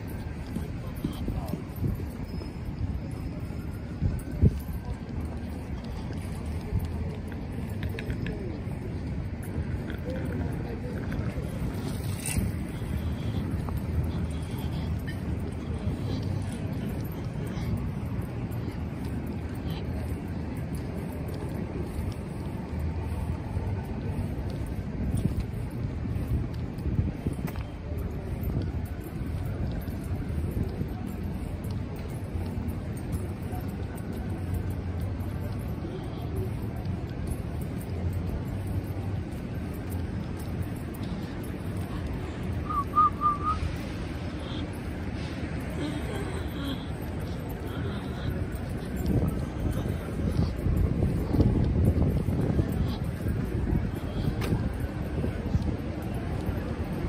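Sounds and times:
wind buffeting microphone: 0:00.0 - 0:42.6, 0:43.6 - 0:57.0
road traffic rumble: 0:00.0 - 0:57.0.

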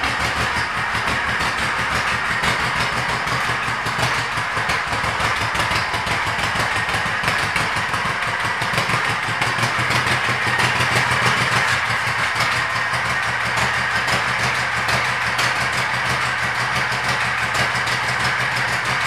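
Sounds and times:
motorcycle engine idling: 0:00.0 - 0:19.0.

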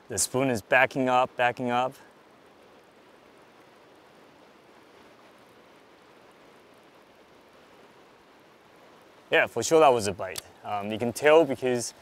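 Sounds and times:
river water rushing: 0:00.0 - 0:12.0.

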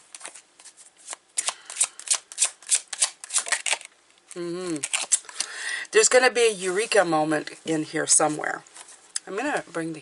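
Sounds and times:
cards being shuffled: 0:00.1 - 0:03.9, 0:04.6 - 0:05.5.

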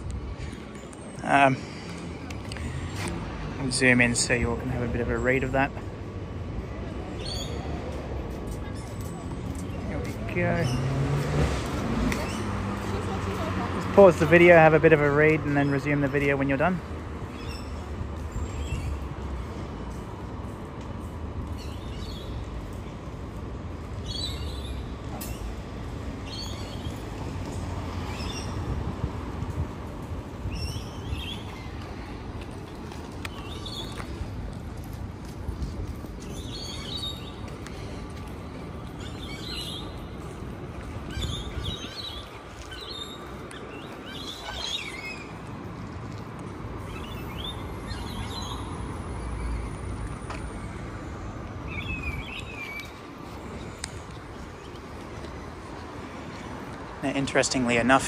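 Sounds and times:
low rumble of traffic: 0:00.0 - 0:58.0
birds chirping: 0:07.1 - 0:07.8, 0:21.5 - 0:22.8, 0:24.0 - 0:28.8, 0:30.3 - 0:34.3, 0:35.9 - 0:58.0.

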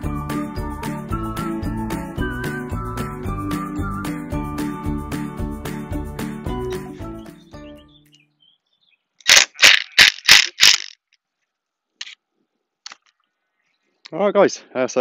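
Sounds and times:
background music: 0:00.0 - 0:08.0.

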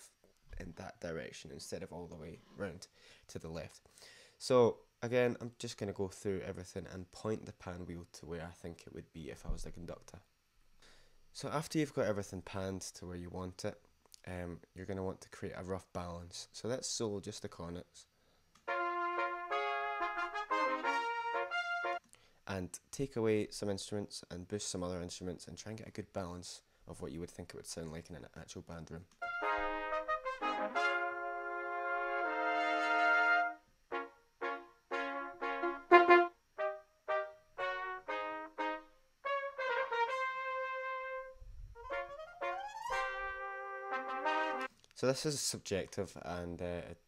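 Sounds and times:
cornets playing in harmony: 0:18.7 - 0:22.0, 0:29.2 - 0:44.7.

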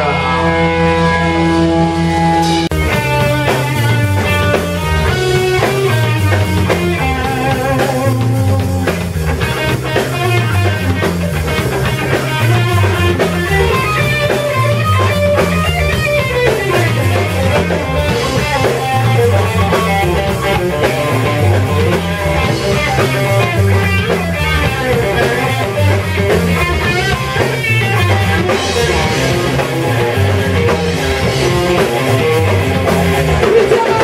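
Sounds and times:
drum kit: 0:00.0 - 0:34.0
electric guitar lines: 0:00.0 - 0:34.0.

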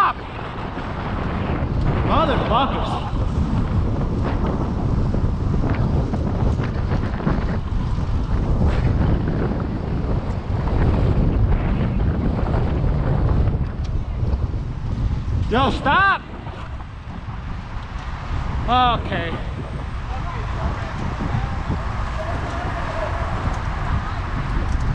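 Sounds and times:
wind buffeting microphone: 0:00.0 - 0:24.9.

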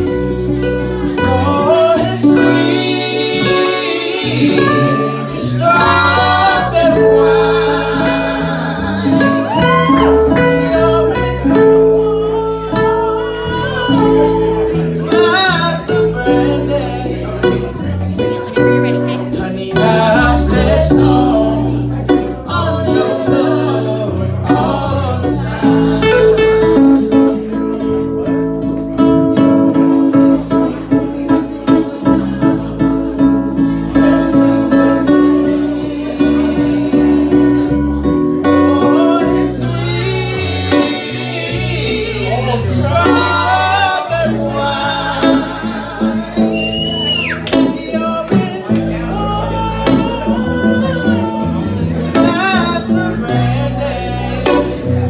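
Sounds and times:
man singing into a microphone: 0:00.0 - 0:27.6, 0:29.3 - 0:55.0
strummed acoustic guitars: 0:00.0 - 0:55.0.

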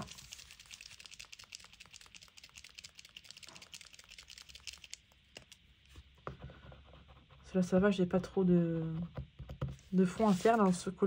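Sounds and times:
paint marker clicking: 0:00.1 - 0:05.6.

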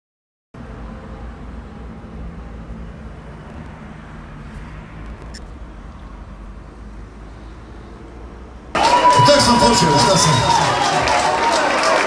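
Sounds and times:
low outdoor rumble: 0:00.6 - 0:08.8.

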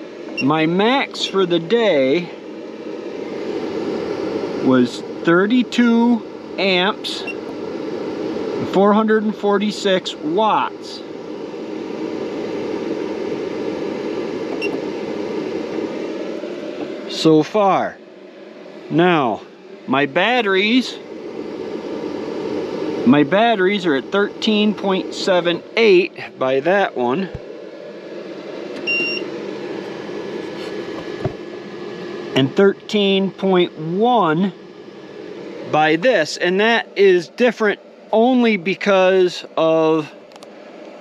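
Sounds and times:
steady low hum: 0:00.0 - 0:41.0
steady whirring: 0:00.0 - 0:41.0
short electronic beep: 0:28.9 - 0:29.3.

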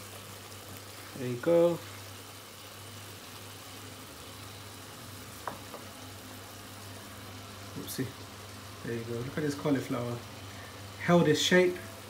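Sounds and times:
curry sizzling in a frying pan: 0:00.0 - 0:12.0
spoon knocking against pan: 0:05.4 - 0:05.9.

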